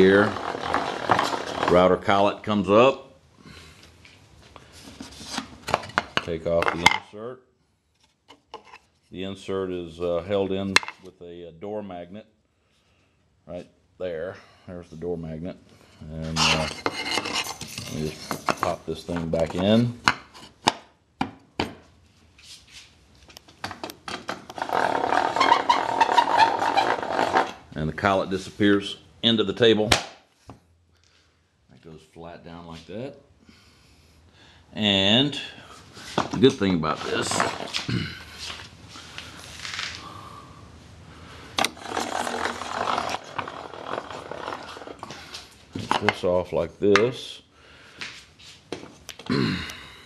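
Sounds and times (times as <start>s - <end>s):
wooden gear lift rattling grind: 0.0s - 1.9s, 24.4s - 27.6s, 41.6s - 45.3s
wood rubbing and scraping: 0.0s - 2.2s, 4.6s - 6.9s, 16.2s - 20.7s, 23.6s - 27.7s, 36.0s - 40.2s, 41.6s - 46.4s.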